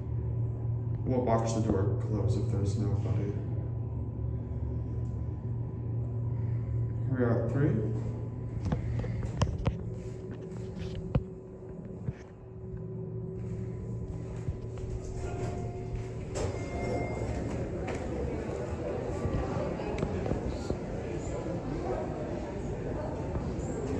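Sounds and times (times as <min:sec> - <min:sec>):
elevator hum: 0:00.0 - 0:23.9
voices: 0:14.9 - 0:23.9.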